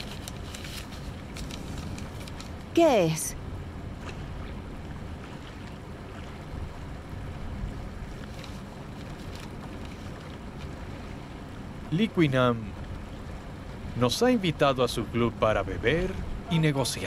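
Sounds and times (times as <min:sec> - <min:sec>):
boat noise: 0:00.0 - 0:17.0
water: 0:00.0 - 0:17.0
wind: 0:00.0 - 0:17.0.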